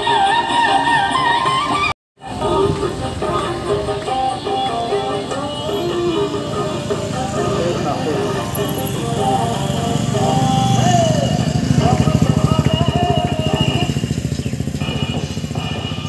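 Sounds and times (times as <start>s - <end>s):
music from a loudspeaker: 0.0s - 14.1s, 14.8s - 16.0s
motorcycle engine passing by: 2.3s - 16.0s
voice from a loudspeaker: 4.8s - 14.1s.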